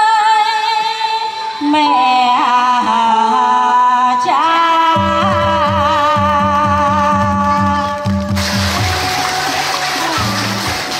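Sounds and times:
backing track with bass beat: 5.0s - 10.9s
people clapping: 5.3s - 10.9s.

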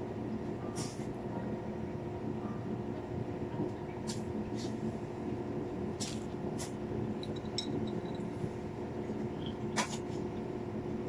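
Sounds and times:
ventilation droning hum: 0.0s - 11.0s.

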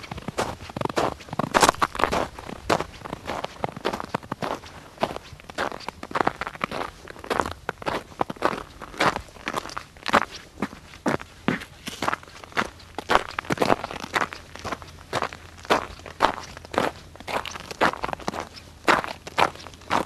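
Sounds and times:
footsteps on gritty surface: 0.2s - 20.0s.

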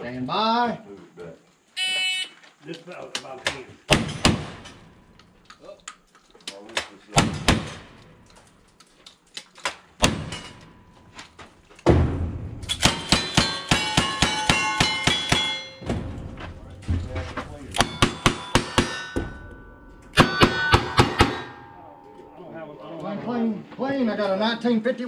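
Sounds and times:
gunshots: 3.9s - 4.9s, 7.1s - 8.2s, 10.0s - 10.7s, 11.8s - 16.2s, 20.1s - 21.8s
steel targets clanging: 10.2s - 11.2s, 12.6s - 22.4s.

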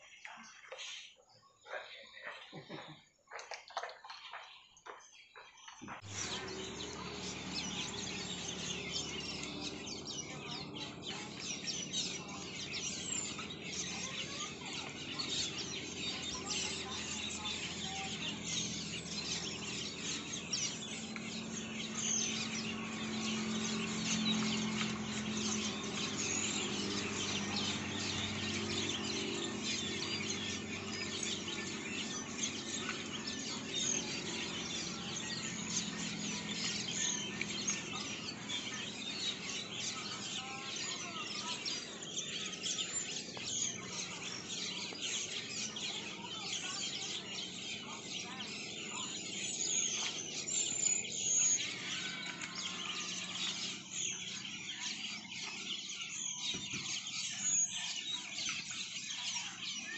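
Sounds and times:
otters chirping and squeaking: 5.6s - 59.9s.

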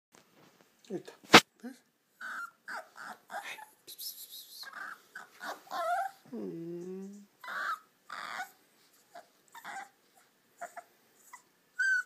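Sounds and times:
puppy whimpering: 2.2s - 3.8s, 4.6s - 12.0s.

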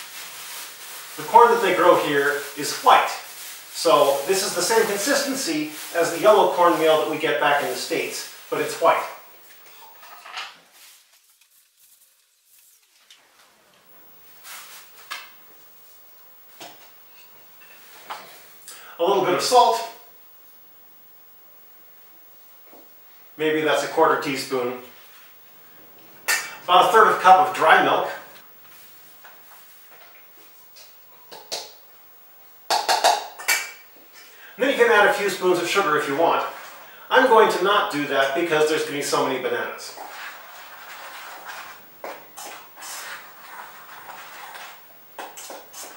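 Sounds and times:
plastic bag rustling: 0.0s - 16.1s
utensils knocking against mixing bowl: 32.7s - 33.6s
cup scraping cornmeal: 39.9s - 45.9s.

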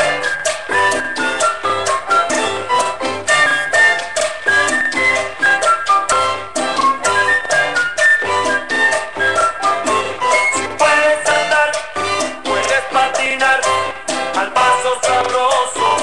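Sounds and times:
instrumental salsa music: 0.0s - 16.0s.

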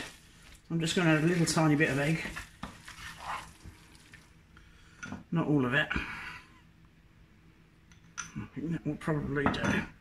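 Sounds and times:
fork scraping glass bowl: 2.2s - 3.5s.

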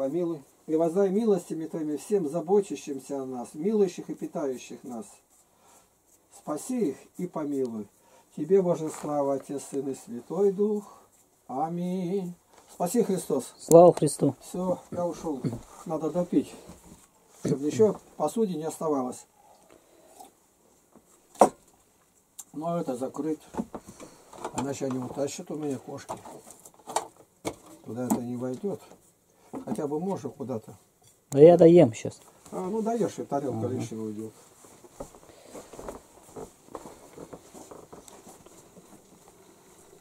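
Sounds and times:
soft footsteps: 32.2s - 40.0s.

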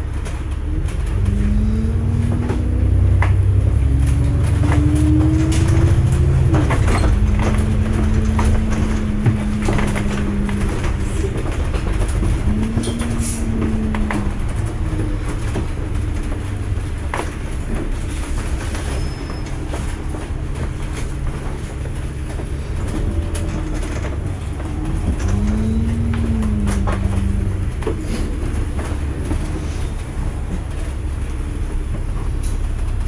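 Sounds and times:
bus engine droning: 0.0s - 33.0s
engine whine: 0.0s - 33.0s
bodywork rattling: 3.5s - 33.0s.

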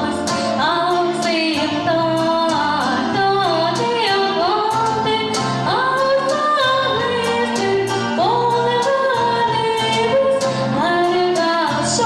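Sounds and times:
girl singing into a microphone: 0.0s - 12.0s
pop backing track with beat: 0.0s - 12.0s.

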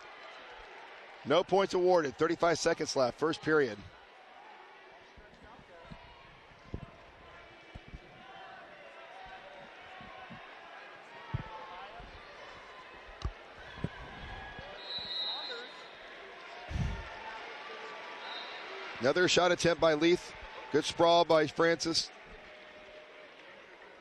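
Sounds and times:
crowd murmur and shouting: 0.0s - 24.0s
high whistle-like tone: 14.7s - 15.9s, 18.2s - 18.6s.

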